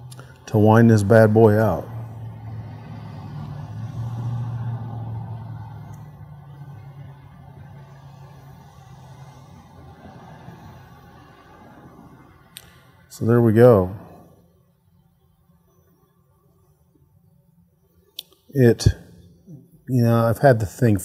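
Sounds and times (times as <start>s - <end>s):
low humming rumble: 0.0s - 14.2s.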